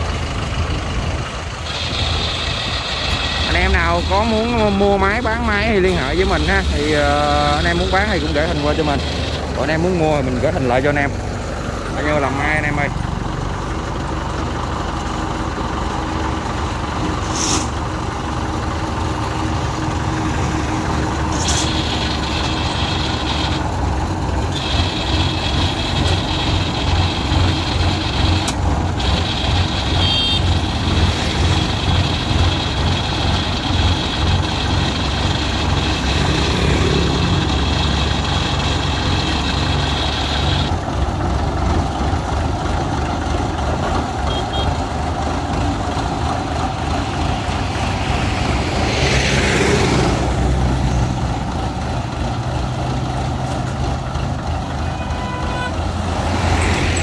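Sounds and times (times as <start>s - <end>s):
tractor diesel engine chugging: 0.0s - 57.0s.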